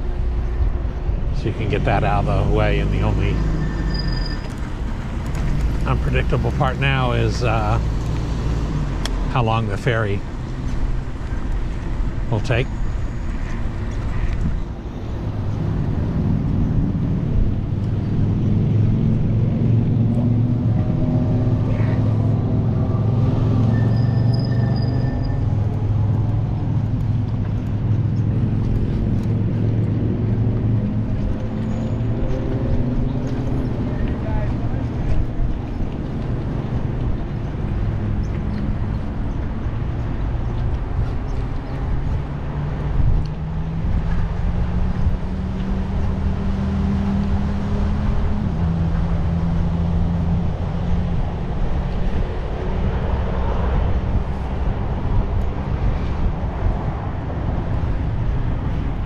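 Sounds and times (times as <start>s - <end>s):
low drone of road traffic: 0.0s - 59.0s
vehicles passing: 0.0s - 59.0s.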